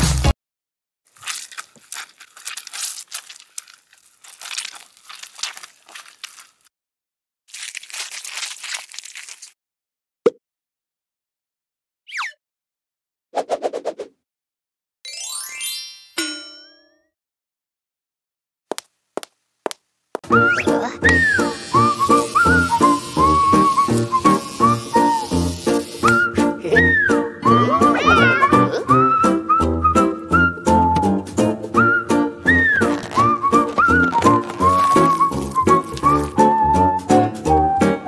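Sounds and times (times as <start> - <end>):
sticky crinkly crackling: 1.1 - 6.7, 7.5 - 9.6, 32.5 - 36.8.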